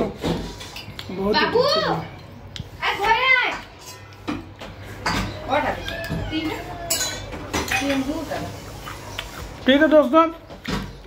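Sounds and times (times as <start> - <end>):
cutlery clinking against a plate: 3.5 - 8.1.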